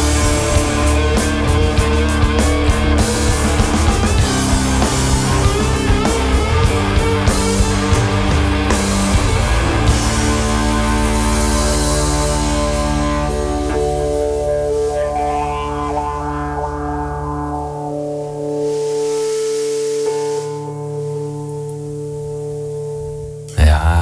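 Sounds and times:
bass: 0:00.0 - 0:20.8, 0:21.7 - 0:24.0
drums: 0:00.0 - 0:22.4
electric guitar chord ringing: 0:00.0 - 0:23.6.

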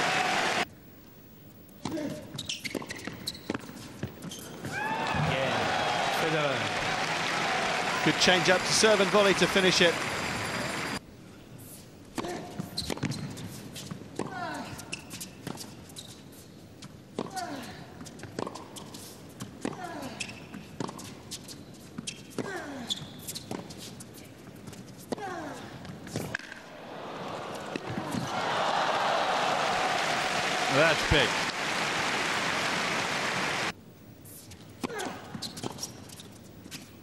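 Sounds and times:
crowd applause: 0:00.0 - 0:00.6, 0:04.8 - 0:11.0, 0:26.7 - 0:33.7.

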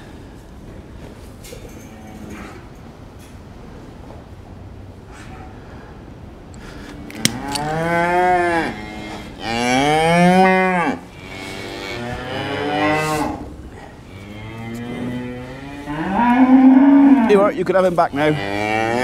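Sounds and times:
cow mooing: 0:07.3 - 0:13.5, 0:14.2 - 0:17.5, 0:18.3 - 0:19.0.

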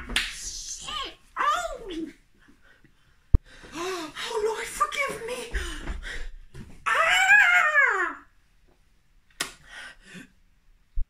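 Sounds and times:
person crying out wordlessly: 0:06.9 - 0:08.3
sharp click: 0:09.3 - 0:09.6.

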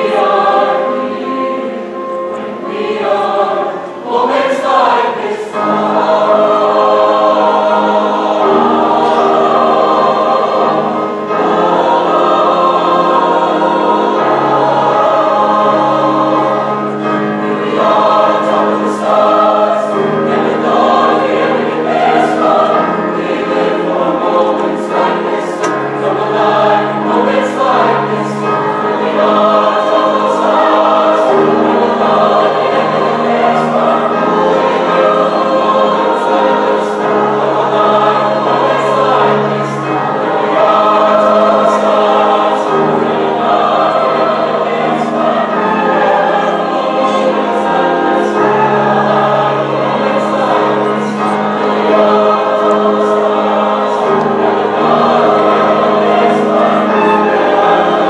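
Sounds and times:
choir singing sustained chords: 0:00.0 - 0:58.0.

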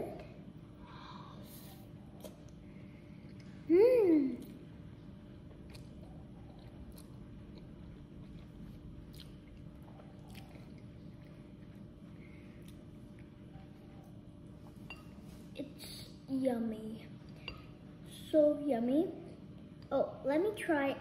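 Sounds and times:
low room hum: 0:00.0 - 0:21.0
chewing noodles: 0:05.5 - 0:14.2.

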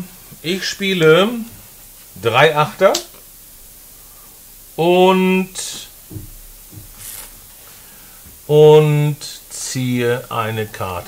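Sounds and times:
playing cards tapping: 0:06.1 - 0:07.3
playing cards swishing: 0:06.9 - 0:07.4.

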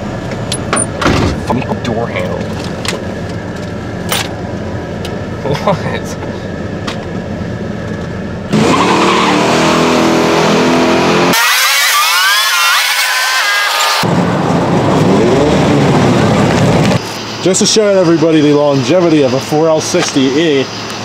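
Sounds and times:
engine revving hard: 0:08.5 - 0:14.0.

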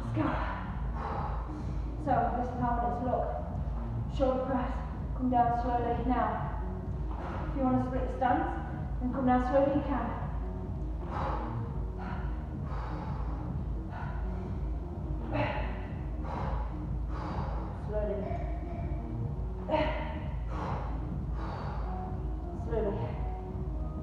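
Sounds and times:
woman breathing hard: 0:00.0 - 0:04.1, 0:06.4 - 0:09.0, 0:10.2 - 0:24.0.

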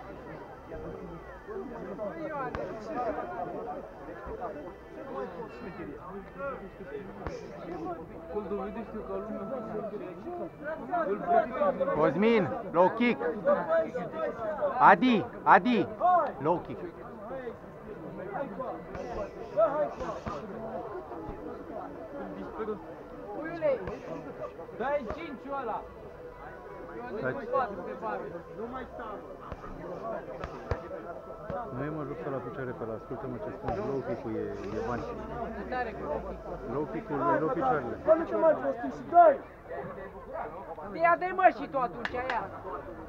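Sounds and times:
indistinct voices talking: 0:00.0 - 0:43.0.

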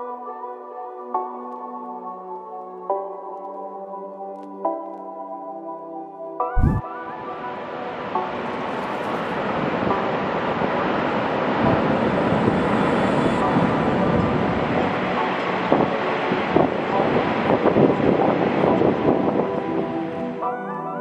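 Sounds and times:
wind buffeting microphone: 0:06.6 - 0:06.8.

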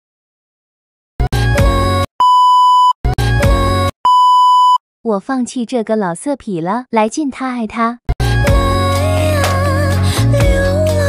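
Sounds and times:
high test-tone beep: 0:02.2 - 0:03.0, 0:04.1 - 0:04.8.

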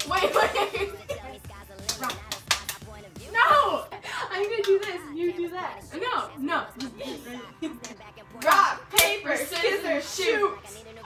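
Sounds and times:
girls laughing: 0:00.0 - 0:01.5, 0:06.8 - 0:08.0
girls talking: 0:00.0 - 0:11.0
hands smacking: 0:01.8 - 0:02.9.

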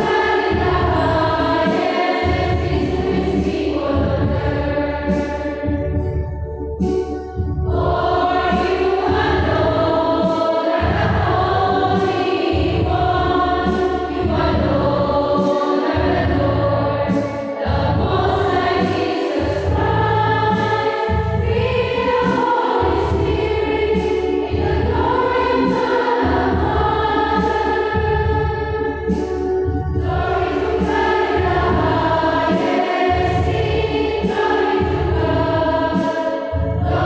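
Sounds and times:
choir singing a hymn: 0:00.0 - 0:37.0.

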